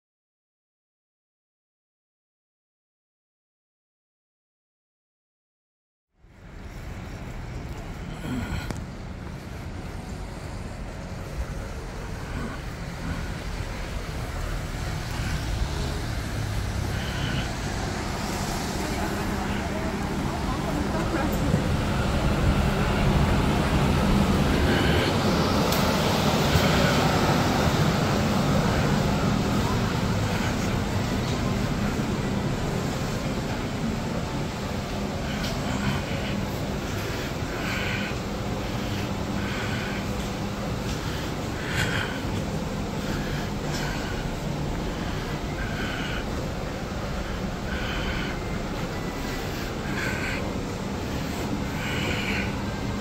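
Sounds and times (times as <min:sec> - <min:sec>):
traffic rumble: 0:06.2 - 0:53.0
indistinct background voices: 0:07.7 - 0:53.0.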